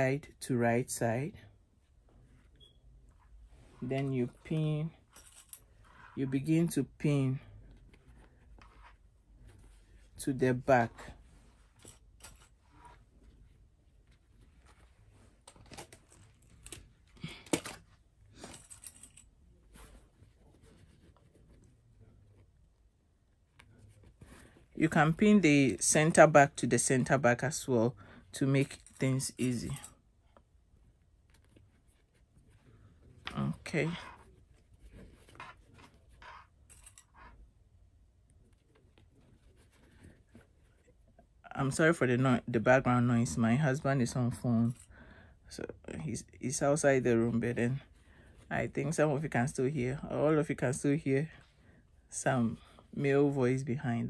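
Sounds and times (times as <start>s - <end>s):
fabric rustling and crinkling: 10.9s - 22.5s.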